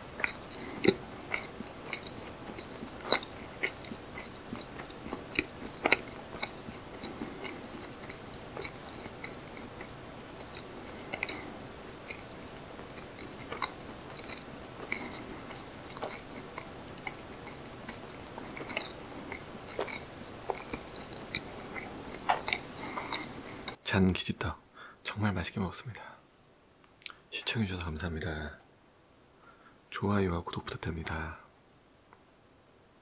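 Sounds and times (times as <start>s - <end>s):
mouth chewing rice cake: 0.0s - 23.8s.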